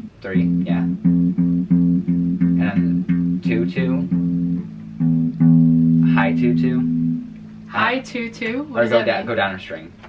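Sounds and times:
electric bass guitar notes: 0.0s - 9.2s.

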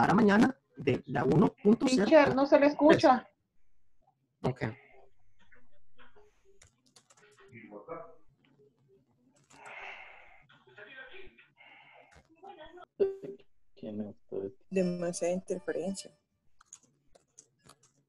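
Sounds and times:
broken-up voices over video call: 0.0s - 3.2s, 4.4s - 4.8s, 12.2s - 16.1s.

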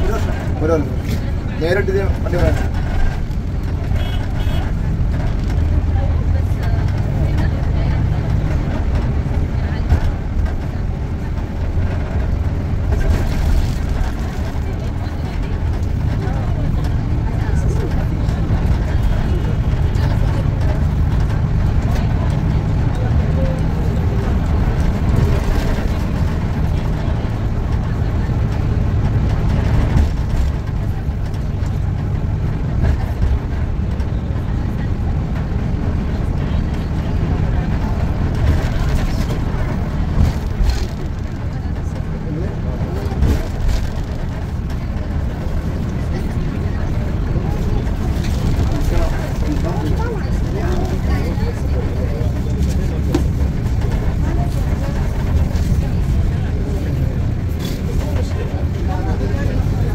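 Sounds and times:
car engine and tyres rumbling: 0.0s - 59.9s.

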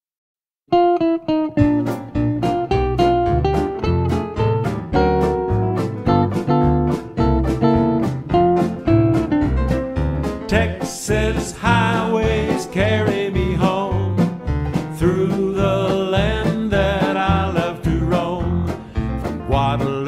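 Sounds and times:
guitar picking single notes: 0.7s - 12.5s
western swing band playing: 0.8s - 20.0s
bass line: 1.3s - 20.0s.

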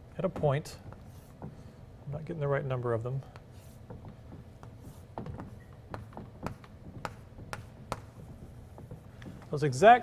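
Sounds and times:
chalk tapping on blackboard: 0.3s - 1.8s, 3.2s - 10.0s.

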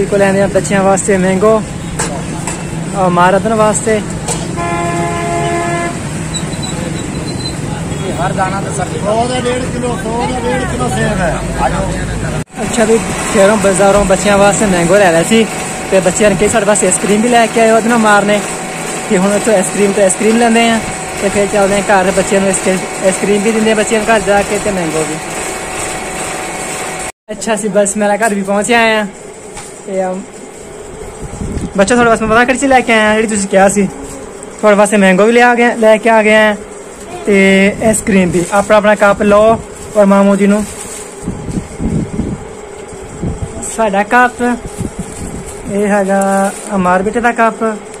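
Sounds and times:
ice cream machine running: 0.0s - 48.0s
low traffic rumble: 0.0s - 48.0s
vehicle horn honk: 4.3s - 7.1s.

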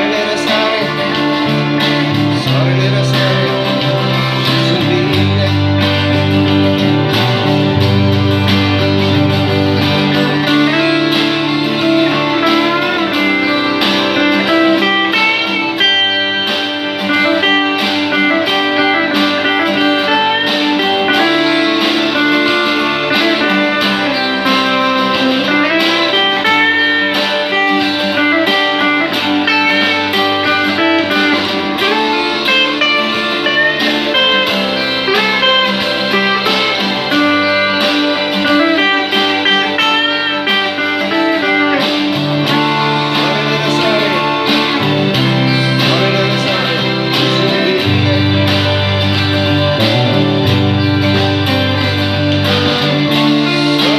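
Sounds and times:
electric guitar melody: 0.0s - 53.9s.

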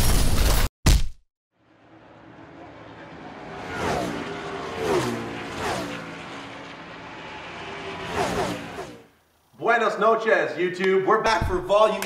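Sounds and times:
race cars passing at speed: 1.6s - 9.2s
background engine noise: 1.6s - 9.7s.

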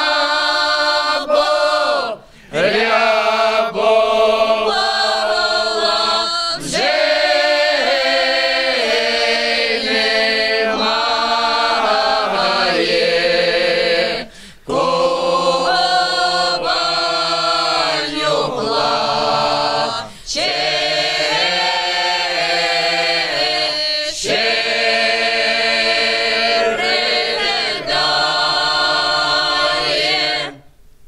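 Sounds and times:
mixed choir singing unaccompanied: 0.0s - 30.7s.

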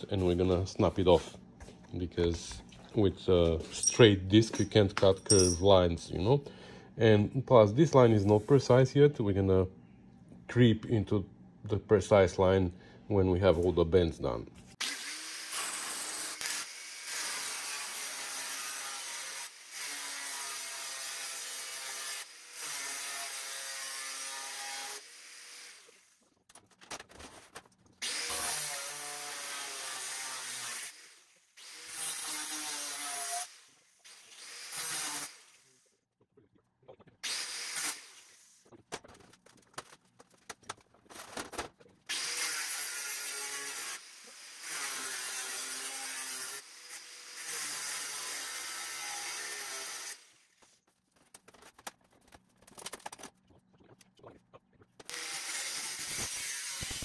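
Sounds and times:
angle grinder cutting steel: 14.8s - 26.0s, 28.0s - 35.8s, 37.2s - 38.6s, 42.1s - 50.4s, 55.0s - 57.0s.

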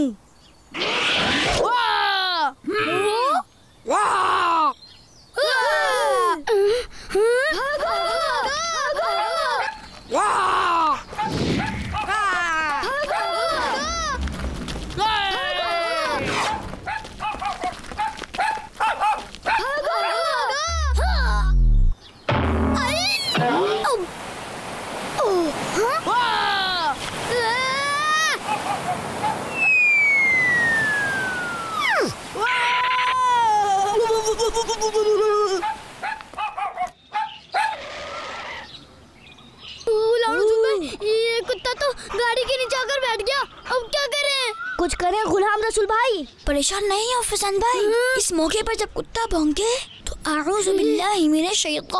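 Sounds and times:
rushing noise: 13.8s - 16.9s
small dog yipping: 16.5s - 20.2s.

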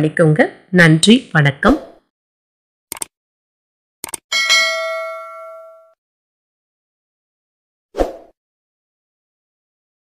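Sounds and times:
short clicks: 2.9s - 3.2s, 4.0s - 4.2s
notification bell ding: 4.3s - 6.0s.

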